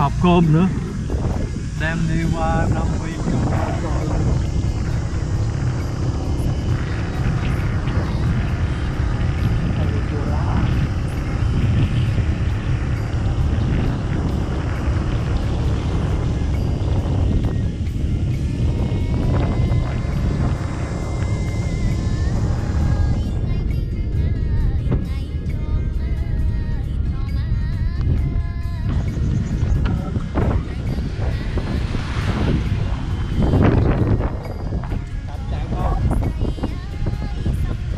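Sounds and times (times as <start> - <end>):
motorbike running: 0.0 - 37.9
music with singing voice: 0.0 - 37.9
wind on microphone: 0.0 - 37.9.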